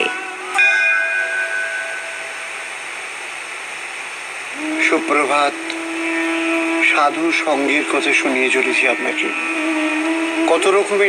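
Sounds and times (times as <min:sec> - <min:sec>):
background music chord: 0:00.0 - 0:02.8
steady hiss: 0:00.0 - 0:11.0.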